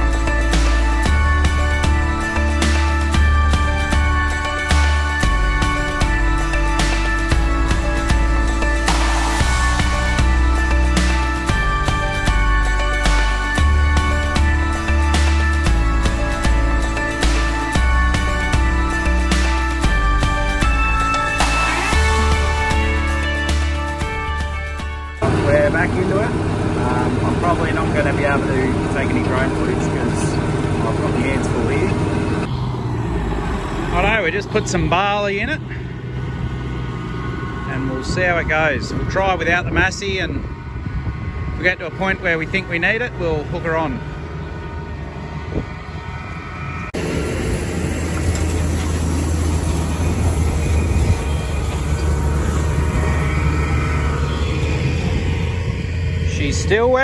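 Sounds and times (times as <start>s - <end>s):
tractor engine droning: 0.0s - 57.0s
man talking: 25.2s - 32.0s, 33.9s - 35.8s, 37.7s - 40.4s, 41.6s - 44.0s, 56.3s - 57.0s
seeder tines working through mud: 47.0s - 57.0s.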